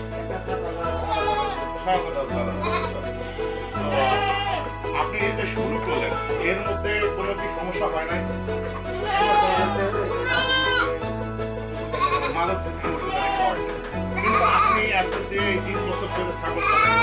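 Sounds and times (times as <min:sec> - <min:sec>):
background music with bass line: 0:00.0 - 0:17.0
goats bleating: 0:00.9 - 0:01.6, 0:02.4 - 0:04.7, 0:08.9 - 0:11.0, 0:11.9 - 0:13.6, 0:14.2 - 0:14.9, 0:16.5 - 0:17.0.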